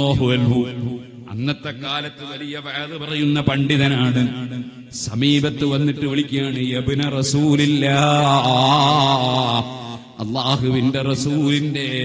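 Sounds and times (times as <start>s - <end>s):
man chanting: 0.0s - 12.0s.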